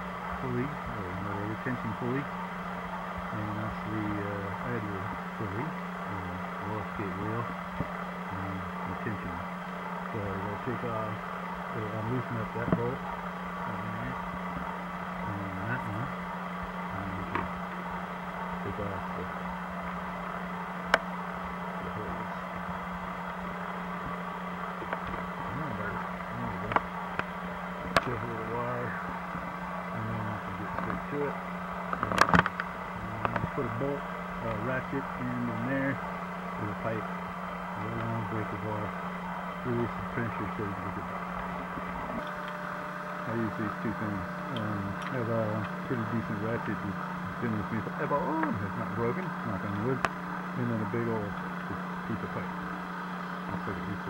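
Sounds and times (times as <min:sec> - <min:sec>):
steady low hum: 0:00.0 - 0:54.0
muffled talking: 0:00.4 - 0:02.3, 0:03.3 - 0:07.5, 0:08.3 - 0:09.4, 0:10.1 - 0:13.0, 0:13.6 - 0:14.2, 0:15.2 - 0:16.2, 0:16.9 - 0:17.5, 0:18.6 - 0:19.4, 0:21.8 - 0:22.5, 0:25.4 - 0:26.8, 0:27.9 - 0:29.2, 0:29.9 - 0:31.4, 0:32.0 - 0:36.0, 0:36.6 - 0:37.1, 0:37.8 - 0:39.0, 0:39.6 - 0:41.2, 0:43.2 - 0:52.7, 0:53.5 - 0:54.0
sharp clicks and knocks: 0:31.9 - 0:33.6.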